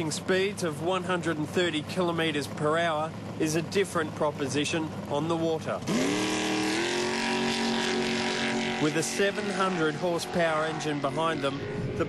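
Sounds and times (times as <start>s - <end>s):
boat engine at high revs: 0.0s - 12.0s.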